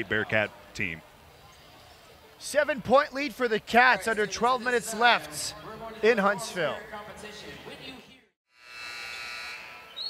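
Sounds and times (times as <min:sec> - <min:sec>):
arena buzzer horn: 0:08.6 - 0:10.0.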